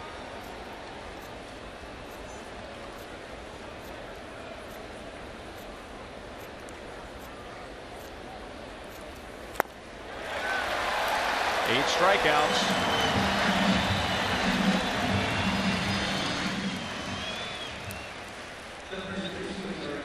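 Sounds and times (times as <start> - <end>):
stadium crowd murmur: 0.0 - 20.0.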